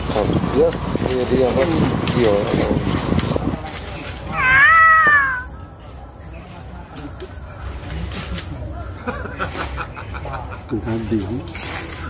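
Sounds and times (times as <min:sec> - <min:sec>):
cat meowing: 0:04.3 - 0:05.6.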